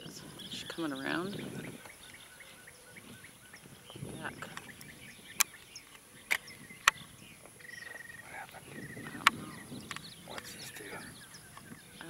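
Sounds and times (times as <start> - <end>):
bird trills: 0.0 - 12.0
small birds chirping: 0.0 - 12.0
sharp clicks: 4.4 - 7.1, 9.0 - 10.6.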